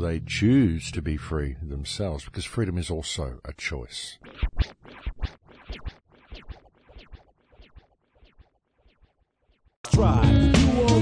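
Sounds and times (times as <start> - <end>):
record scratching on turntable: 4.2 - 9.0.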